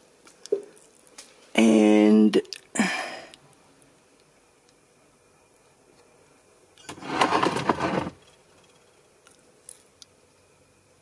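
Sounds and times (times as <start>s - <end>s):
containers rustling on shelf: 6.9s - 8.2s.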